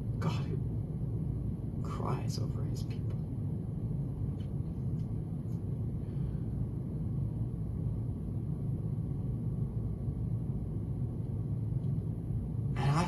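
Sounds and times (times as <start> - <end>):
low room tone rumble: 0.0 - 13.0.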